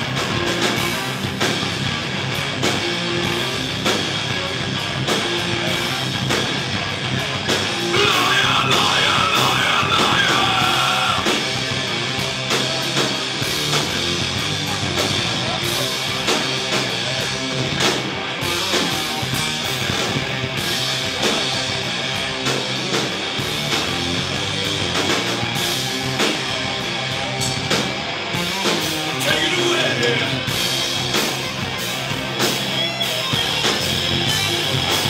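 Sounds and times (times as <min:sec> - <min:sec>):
distorted electric guitars: 0:00.0 - 0:35.0
drum kit: 0:00.0 - 0:35.0.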